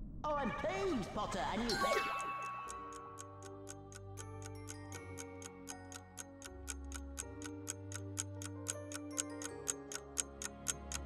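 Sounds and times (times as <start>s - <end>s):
held background music notes: 0.4s - 11.0s
clock-like countdown ticking: 1.7s - 11.0s.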